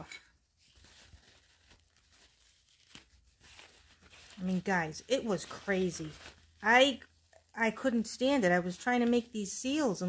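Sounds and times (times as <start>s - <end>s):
hand wiping rustling: 0.4s - 7.5s.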